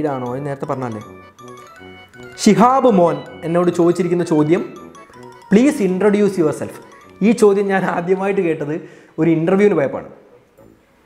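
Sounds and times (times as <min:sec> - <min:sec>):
man speaking: 0:00.0 - 0:01.2, 0:02.4 - 0:04.8, 0:05.5 - 0:10.8
light background music: 0:00.0 - 0:11.0.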